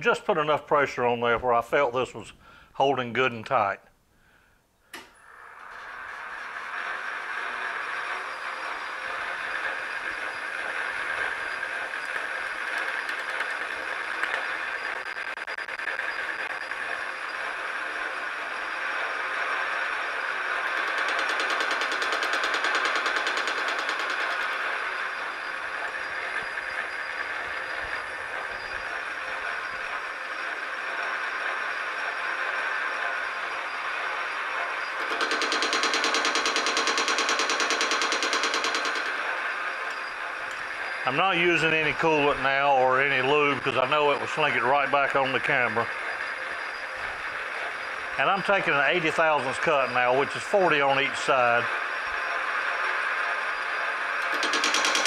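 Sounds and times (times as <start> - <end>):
metal lathe running: 5.3 - 55.0.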